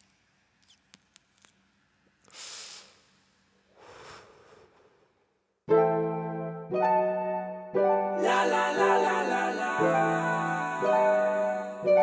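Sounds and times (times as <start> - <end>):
short hissing noise: 2.2 - 4.9.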